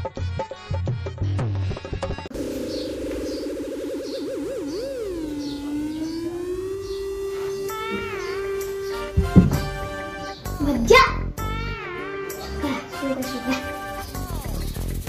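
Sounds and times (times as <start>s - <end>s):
wavering electronic tone: 2.3s - 10.4s.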